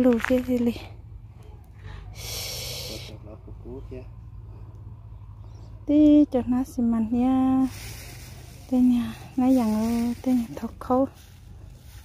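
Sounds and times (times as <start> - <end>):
person blowing breath: 1.9 - 3.1.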